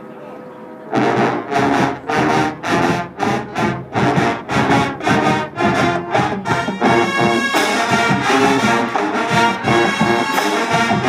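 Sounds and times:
brass instruments blasting: 0.9s - 11.0s
marching drums: 1.0s - 11.0s.

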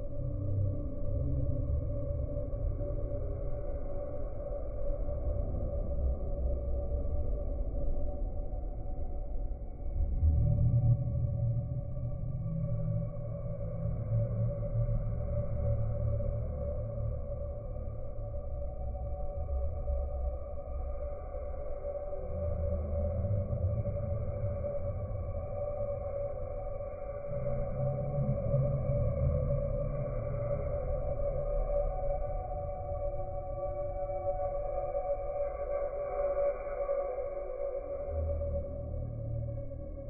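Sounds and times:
drone of held tones: 0.0s - 40.0s
low rumble: 0.0s - 40.0s
steady hum: 0.0s - 40.0s.

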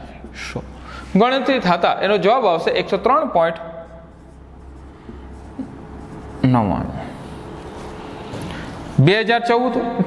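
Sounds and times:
marker pen writing on whiteboard: 0.0s - 8.4s
low room hum: 0.0s - 10.0s.

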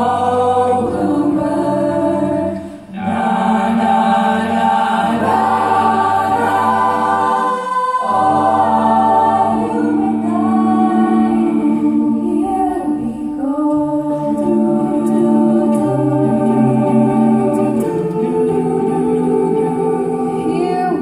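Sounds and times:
choir singing a cappella: 0.0s - 21.0s.

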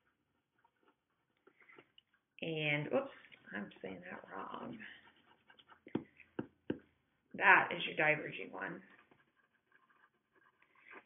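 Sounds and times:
pencil tapping on paper: 5.4s - 6.9s.

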